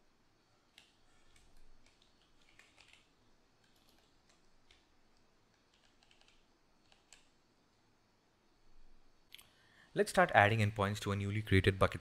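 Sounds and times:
typing on computer keyboard: 0:00.7 - 0:04.9, 0:05.5 - 0:07.4.

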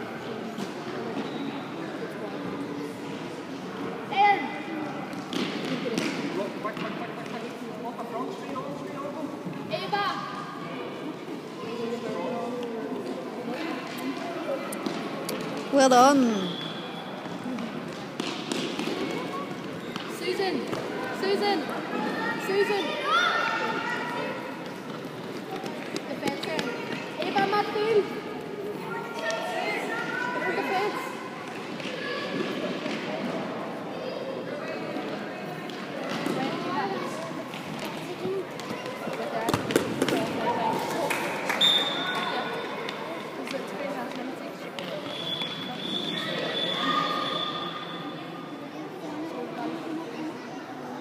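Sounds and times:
voices echoing in a hall: 0:00.0 - 0:51.0.

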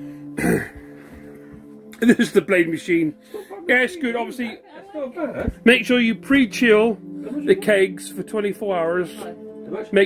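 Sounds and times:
background music with held tones: 0:00.0 - 0:10.0
person coughing: 0:00.4 - 0:00.9.

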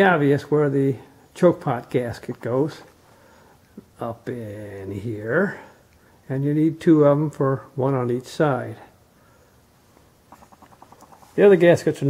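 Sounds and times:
faint rapid clicks: 0:10.3 - 0:11.2.

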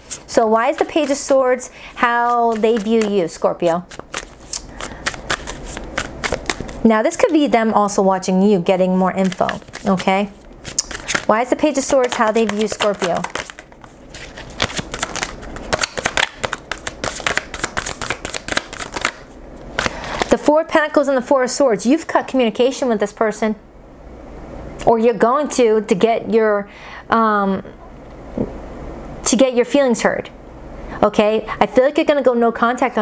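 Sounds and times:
cards being shuffled: 0:00.0 - 0:07.4, 0:09.1 - 0:20.4.

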